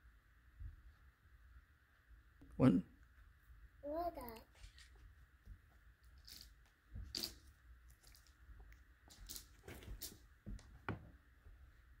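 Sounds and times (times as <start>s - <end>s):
faint rustles and soft clicks: 4.3s - 10.9s.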